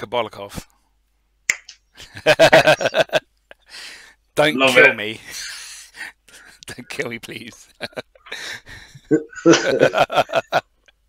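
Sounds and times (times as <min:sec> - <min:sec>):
sharp click: 0:01.5 - 0:01.8
men laughing loudly: 0:02.0 - 0:03.2, 0:07.8 - 0:10.6.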